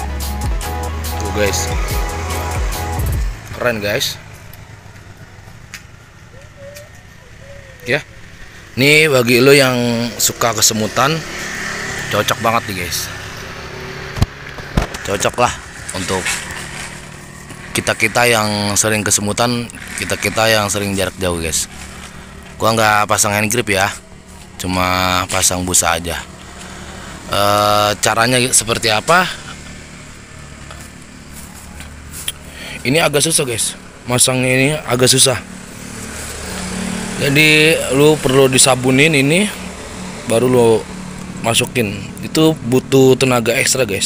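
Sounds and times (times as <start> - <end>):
man speaking: 1.1 - 2.5, 3.5 - 4.2, 7.3 - 8.2, 8.8 - 11.2, 12.1 - 13.2, 15.0 - 16.4, 17.7 - 21.7, 22.6 - 24.0, 24.6 - 26.3, 27.3 - 29.5, 32.6 - 35.5, 37.2 - 39.6, 40.2 - 44.0.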